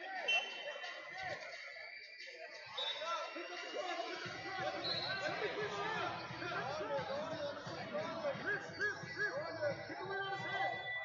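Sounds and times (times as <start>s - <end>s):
voices calling out across hall: 0.0s - 11.0s.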